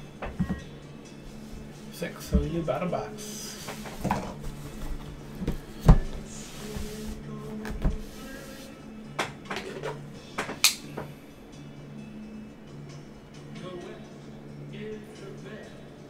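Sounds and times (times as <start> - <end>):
background music: 0.0 - 16.0
cardboard boxes knocking and scraping: 3.7 - 7.0.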